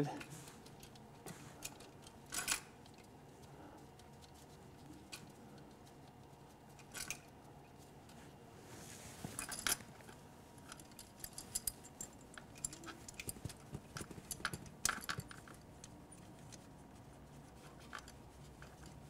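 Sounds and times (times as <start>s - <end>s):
metal lines clicking and clinking: 0.0s - 7.9s, 9.3s - 19.0s.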